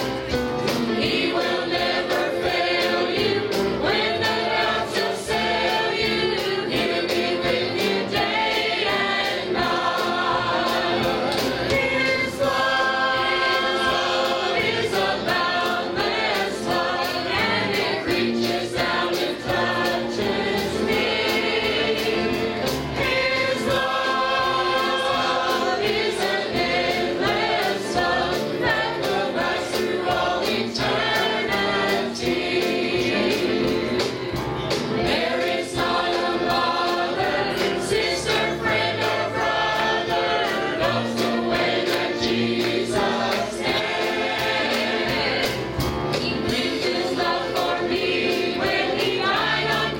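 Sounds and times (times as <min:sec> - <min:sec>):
choir singing gospel song: 0:00.0 - 0:49.9
sharp rhythmic hits: 0:00.6 - 0:49.9.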